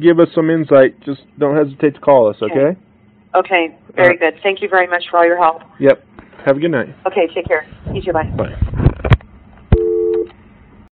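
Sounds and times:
two-note telephone tone: 9.8 - 10.4.

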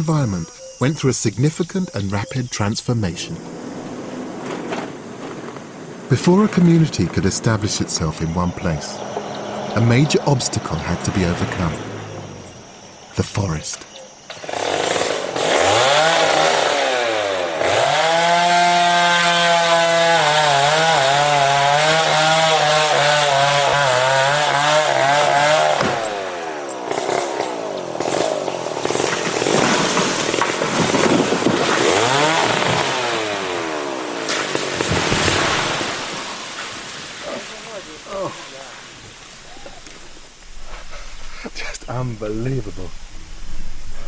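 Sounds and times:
chainsaw cutting wood: 14.3 - 36.9.

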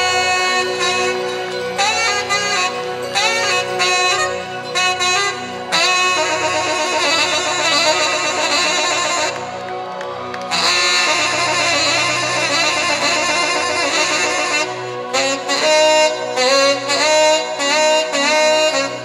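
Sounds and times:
bass: 0.0 - 19.0
tenor saxophone solo: 0.0 - 19.0.

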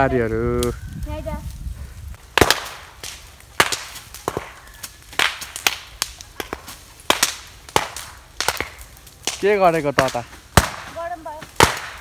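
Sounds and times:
sharp cracks or knocks: 2.3 - 12.0.

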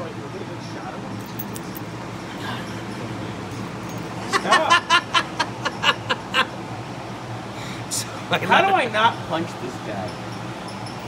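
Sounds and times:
man laughing: 4.3 - 6.5.

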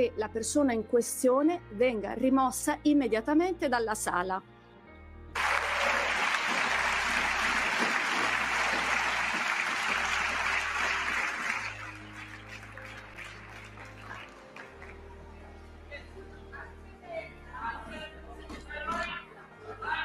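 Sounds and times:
low background music: 0.0 - 20.0
crowd applause: 5.4 - 15.0.

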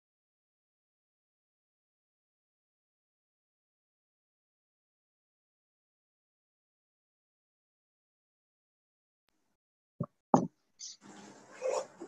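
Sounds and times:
short dull thumps: 10.0 - 10.5.

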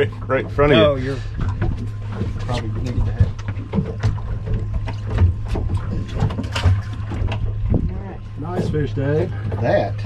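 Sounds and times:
low hum: 0.0 - 10.0
water slapping boat hull: 0.0 - 10.0
knocks on boat: 1.4 - 10.0.

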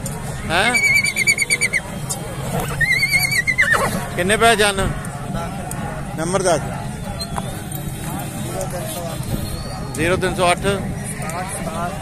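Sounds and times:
horse whinnying: 0.6 - 1.8, 2.5 - 4.0.

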